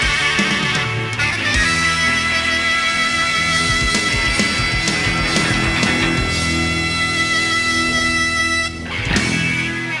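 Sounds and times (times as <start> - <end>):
rock band playing live: 0.0 - 10.0
crash-like hit: 4.4 - 7.8.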